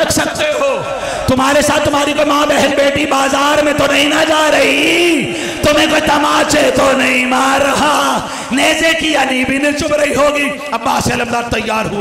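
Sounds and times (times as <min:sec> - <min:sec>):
man chanting over microphone: 0:00.0 - 0:12.0.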